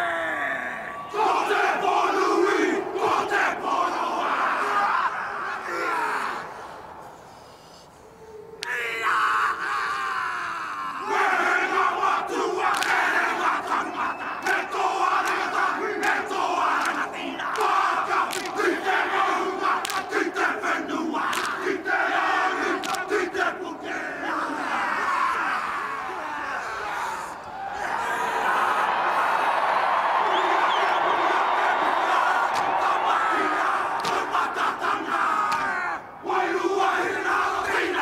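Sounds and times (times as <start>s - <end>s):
men shouting a chant in unison: 0.0s - 6.7s, 8.6s - 29.5s, 30.3s - 38.0s
sharp slaps: 12.7s - 13.1s, 15.2s - 18.8s, 19.8s - 20.2s, 21.3s - 21.6s, 22.8s - 23.1s, 32.5s - 32.7s, 34.0s - 34.3s, 35.4s - 35.8s.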